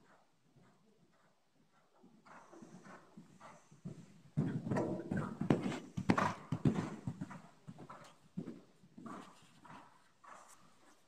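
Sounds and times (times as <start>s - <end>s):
horse hoofbeats on dirt: 0.0s - 11.0s.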